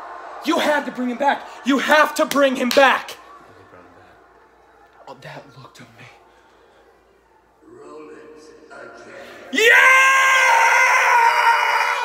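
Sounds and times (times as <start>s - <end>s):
man yelling excitedly: 9.5s - 12.0s.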